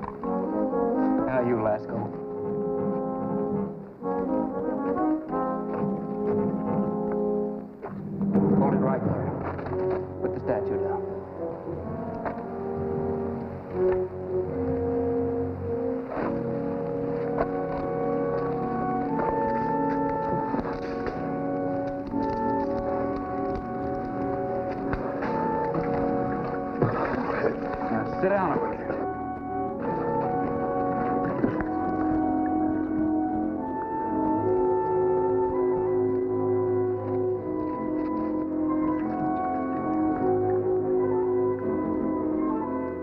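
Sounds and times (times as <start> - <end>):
dramatic orchestral music: 0.0 - 43.0.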